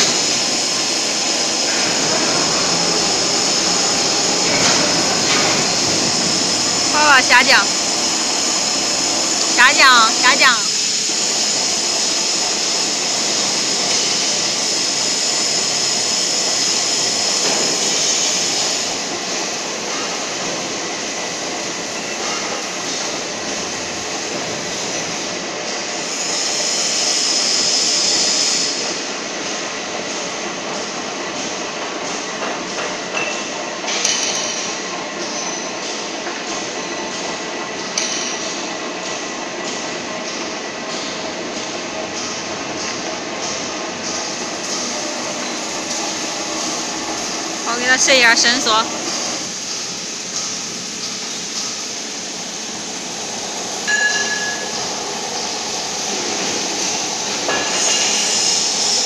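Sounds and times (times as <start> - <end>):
high motor whine: 0.0 - 21.9.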